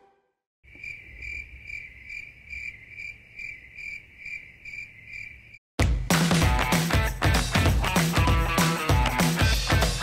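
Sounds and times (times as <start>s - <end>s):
crickets chirping: 0.7s - 5.6s.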